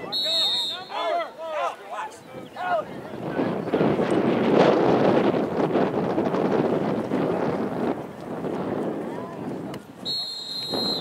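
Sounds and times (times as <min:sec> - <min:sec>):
wind on microphone: 0:02.2 - 0:11.0.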